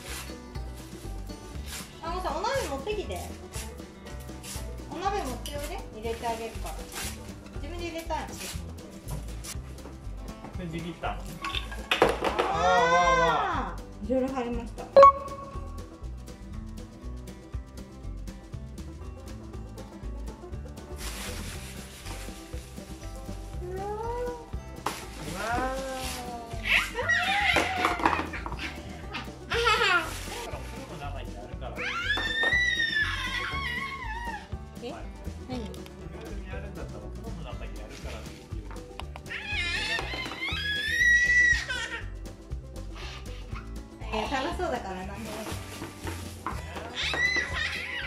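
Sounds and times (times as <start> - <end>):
background music: 0.0 - 48.0
newspaper scraps rustling: 20.9 - 23.4, 24.8 - 28.4, 29.7 - 30.9, 45.1 - 47.6
toddler squealing: 26.6 - 30.2, 31.8 - 34.5, 39.2 - 42.2, 46.9 - 48.0.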